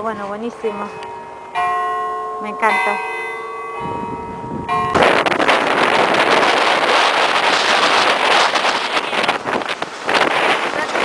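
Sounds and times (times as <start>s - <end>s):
steady ringing tones: 0.0s - 6.5s
wind buffeting microphone: 0.0s - 11.0s
rush of churned water: 5.0s - 11.0s.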